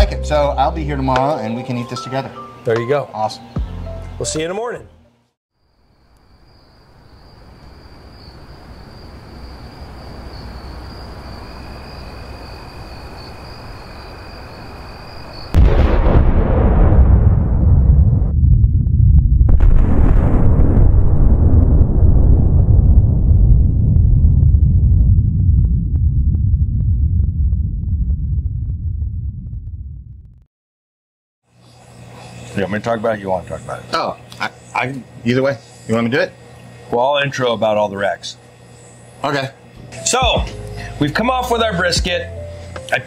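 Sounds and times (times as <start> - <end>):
loud explosion blast: 15.5 - 30.3
low rumble: 15.6 - 30.5
thin high whine: 31.5 - 43.0.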